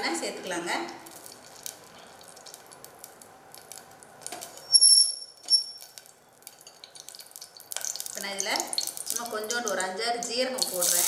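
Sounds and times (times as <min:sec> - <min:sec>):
pan crackling and ticking: 0:00.9 - 0:11.0
sharp high squeak: 0:04.6 - 0:05.9.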